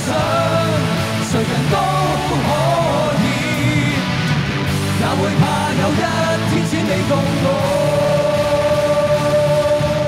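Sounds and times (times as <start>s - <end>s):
singer's sustained voice: 0.0s - 4.2s
electric guitars holding note: 0.0s - 10.0s.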